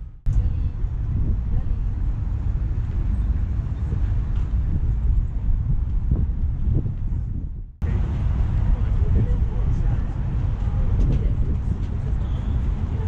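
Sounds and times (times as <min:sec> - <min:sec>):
faint city traffic hum: 0:00.0 - 0:13.0
wind buffeting microphone: 0:00.0 - 0:13.0.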